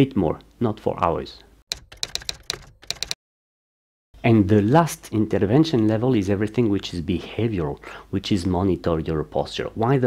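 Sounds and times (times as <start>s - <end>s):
keystroke clicks: 1.7s - 3.2s.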